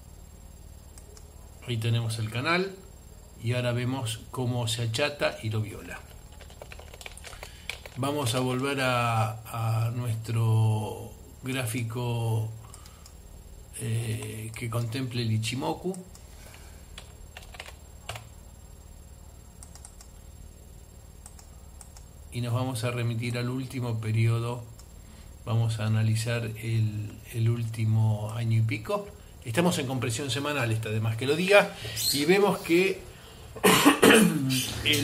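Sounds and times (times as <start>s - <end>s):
man speaking: 3.4s - 6.1s, 8.0s - 12.6s, 13.8s - 16.1s, 25.4s - 33.1s, 33.7s - 35.0s
keystrokes on computer keyboard: 6.0s - 8.0s, 17.0s - 18.3s, 19.6s - 20.1s, 21.2s - 22.1s
faint clicks: 12.6s - 13.2s, 15.9s - 16.3s, 19.6s - 20.2s, 21.2s - 22.1s, 24.8s - 25.0s
man coughing: 33.6s - 34.9s.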